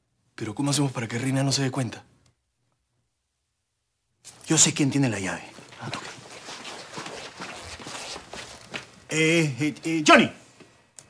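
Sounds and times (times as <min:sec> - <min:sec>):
quick footsteps: 0:05.4 - 0:09.2.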